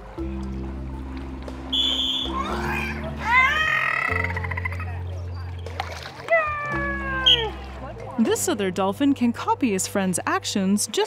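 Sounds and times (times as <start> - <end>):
background music: 0.0 - 11.0
high whistle tone: 1.7 - 2.4
dolphin squeaking and buzzing: 6.3 - 7.6.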